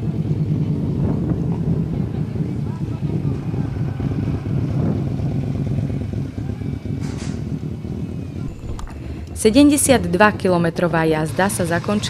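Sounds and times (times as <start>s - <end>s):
motorcycle engines rumbling: 0.0s - 12.0s.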